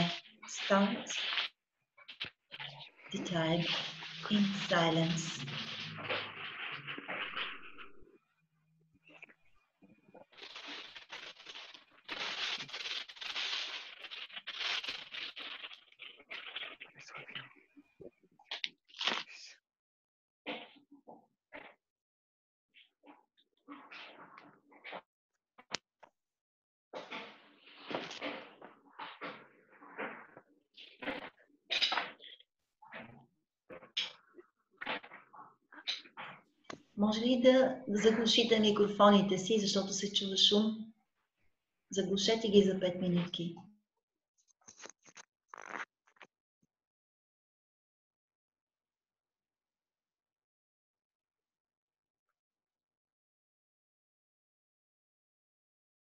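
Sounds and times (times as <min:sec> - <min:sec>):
microphone noises on online call: 0:00.0 - 0:08.2, 0:09.0 - 0:19.5, 0:27.0 - 0:40.9, 0:41.9 - 0:43.6, 0:44.4 - 0:46.3
microphone rustling and crackling: 0:10.1 - 0:17.6, 0:44.5 - 0:46.3.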